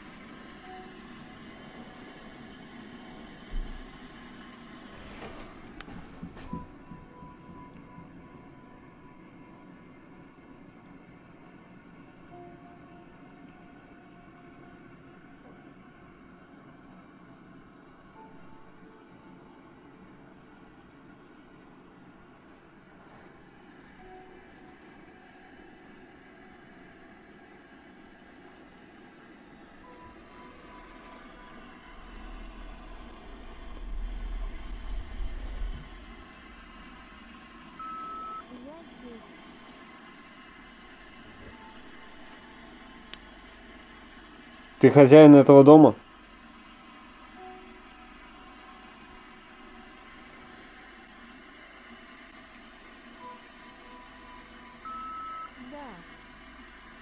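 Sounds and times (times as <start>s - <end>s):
low rumble: 29.8s - 44.4s
short beep: 37.8s - 38.4s
faint brief tones: 40.9s - 42.6s.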